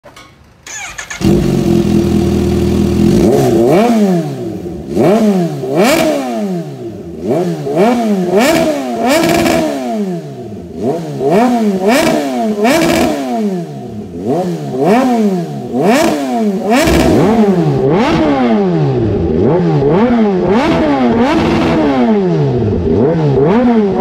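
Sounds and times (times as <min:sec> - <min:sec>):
motorcycle engine revving: 0:00.6 - 0:24.0.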